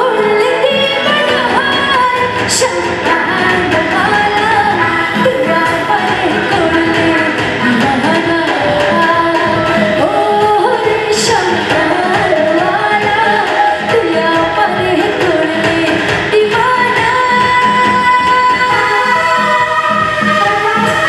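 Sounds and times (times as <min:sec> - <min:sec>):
live band keyboard and guitar: 0:00.0 - 0:21.0
woman singing into microphone: 0:00.0 - 0:21.0.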